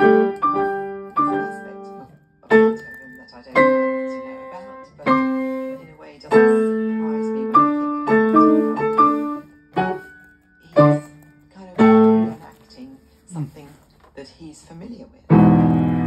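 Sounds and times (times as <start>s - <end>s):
piano chords: 0.0s - 12.4s, 15.3s - 16.0s.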